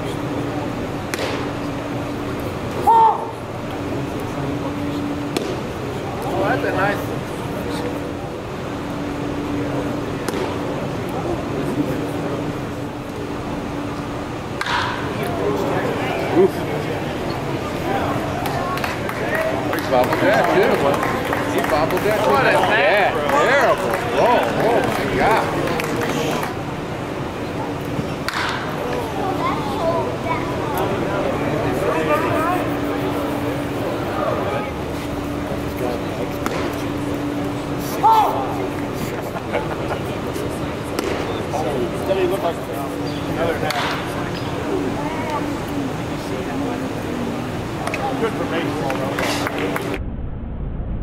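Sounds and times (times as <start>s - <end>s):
ballpark background noise: 0.0s - 50.0s
steady low hum: 0.0s - 51.0s
sharp pop: 1.1s - 1.4s
bat hitting ball crack: 1.1s - 1.5s, 14.6s - 15.1s, 28.3s - 28.7s
scattered spectator voices: 27.5s - 49.6s.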